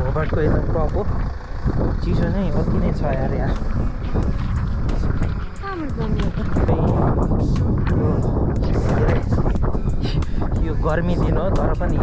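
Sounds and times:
man talking: 0.0s - 1.2s, 2.0s - 3.7s, 10.6s - 12.0s
wind buffeting the microphone: 0.0s - 12.0s.

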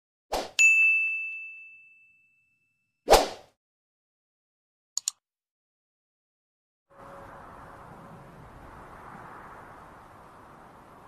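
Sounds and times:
bright clear ding: 0.6s - 2.7s.

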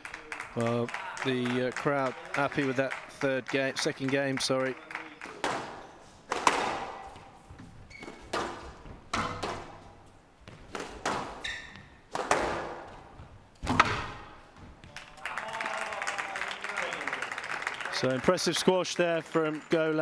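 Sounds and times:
crowd applause: 0.0s - 5.2s, 14.9s - 20.0s
squash ball striking wall: 5.4s - 7.2s, 8.2s - 9.8s, 10.4s - 11.4s, 12.1s - 13.0s, 13.6s - 14.4s
squash racket hitting ball: 5.4s - 7.3s, 8.0s - 14.4s.

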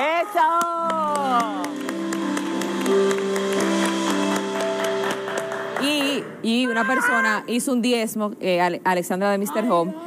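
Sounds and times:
hands clapping in applause: 0.4s - 6.2s.

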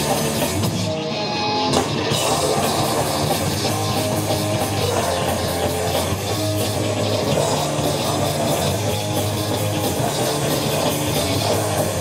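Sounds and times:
bass guitar: 0.0s - 12.0s
distorted electric guitars: 0.0s - 12.0s
drum kit: 0.0s - 12.0s.

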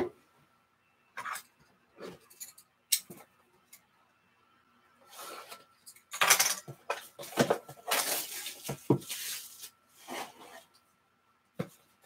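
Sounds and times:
shrink wrap crinkling and tearing: 7.8s - 9.8s.

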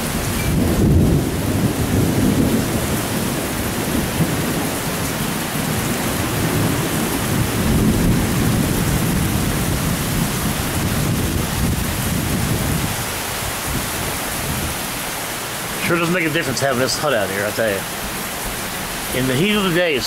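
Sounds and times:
heavy rain on thatch roof: 0.0s - 20.0s.

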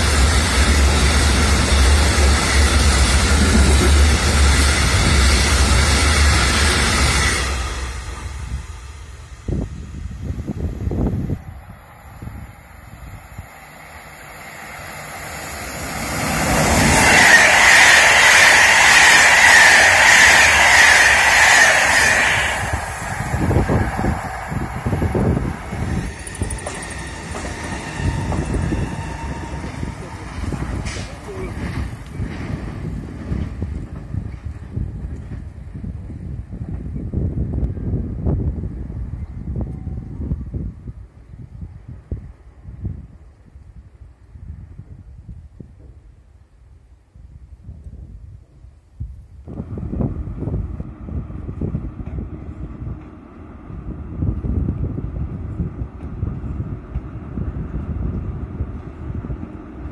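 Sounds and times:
electric train passing: 0.0s - 43.2s, 49.5s - 59.9s
freight train wheels rumbling: 0.0s - 46.5s, 47.6s - 59.9s
high steady squeal: 4.1s - 32.2s.

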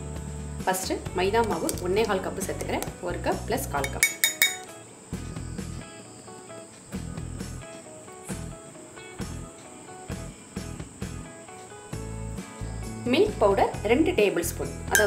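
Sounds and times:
background music: 0.0s - 15.0s
metal sieve tapping over bowl: 3.8s - 4.7s.

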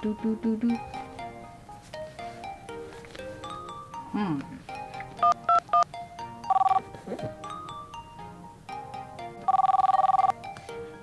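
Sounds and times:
light background music: 0.0s - 11.0s
phone ringtone trill: 3.4s - 8.8s, 9.4s - 10.4s.

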